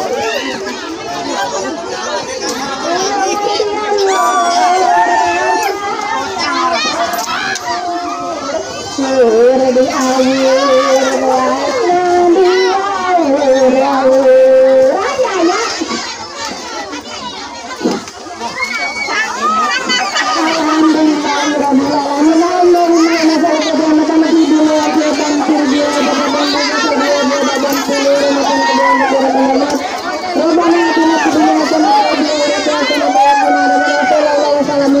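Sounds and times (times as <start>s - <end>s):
crowd chattering and calling out: 0.0s - 35.0s.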